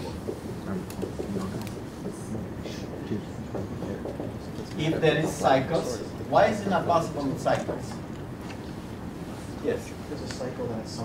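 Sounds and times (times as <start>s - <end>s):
marker writing on whiteboard: 0.0s - 3.0s
low room rumble: 0.0s - 11.0s.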